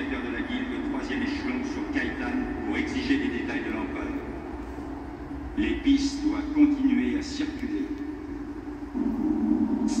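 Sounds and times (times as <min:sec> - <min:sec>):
low rumbling film soundtrack: 0:00.0 - 0:10.0.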